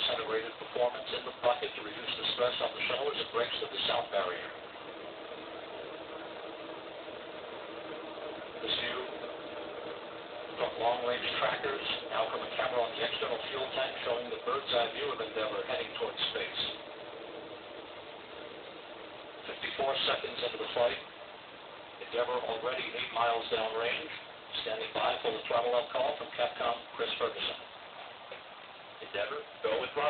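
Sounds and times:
broadcast audio hiss: 0.0s - 30.0s
faint steady hum: 0.0s - 30.0s
steady even noise: 0.0s - 30.0s.

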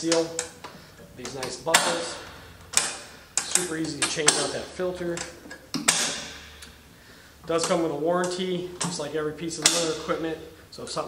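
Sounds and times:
metal buckle latches clicking: 0.1s - 6.8s, 9.6s - 10.1s.

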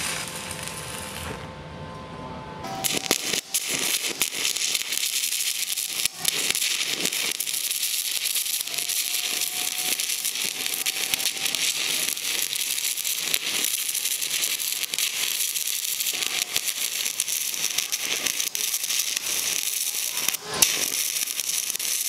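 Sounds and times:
welding arc crackling hiss: 0.0s - 1.4s, 2.7s - 22.0s
welding arc pops: 0.0s - 1.4s, 2.7s - 22.0s.

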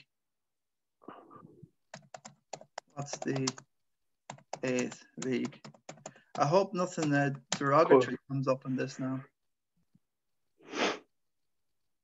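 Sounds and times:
computer keyboard typing: 1.9s - 7.8s.

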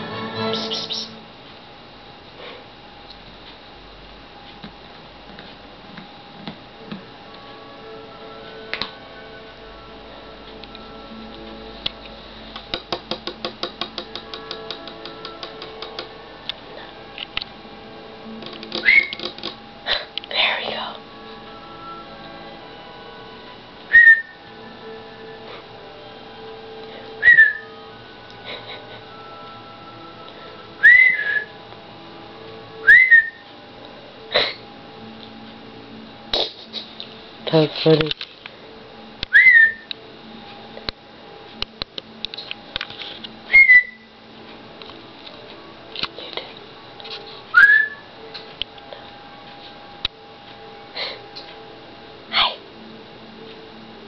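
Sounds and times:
high whistle-like squeaks: 23.9s - 24.4s, 27.2s - 27.8s, 30.8s - 31.5s.

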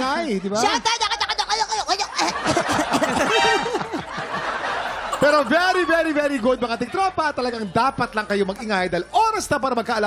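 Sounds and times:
person laughing: 0.6s - 5.7s.

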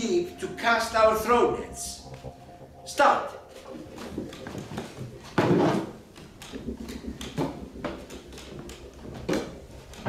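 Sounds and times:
wooden chairs and poles knocking: 3.8s - 10.0s.

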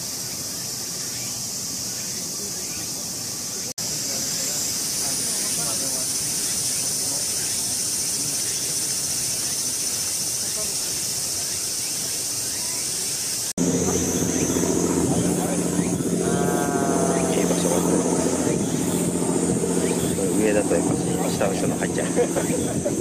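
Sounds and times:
cicada drone: 0.0s - 23.0s
person speaking: 13.6s - 22.6s
low engine-like hum: 13.6s - 23.0s.

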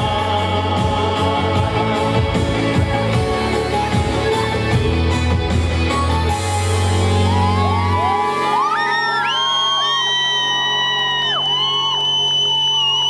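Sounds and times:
audience screaming and whooping: 6.7s - 13.0s.

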